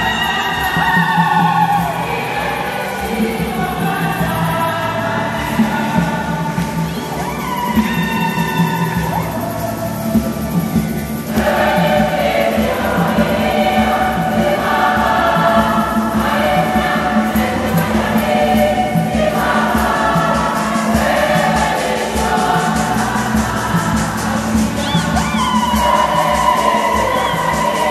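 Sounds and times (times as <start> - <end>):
instrumental accompaniment: 0.0 - 27.9
women's choir singing a hymn: 0.0 - 27.9.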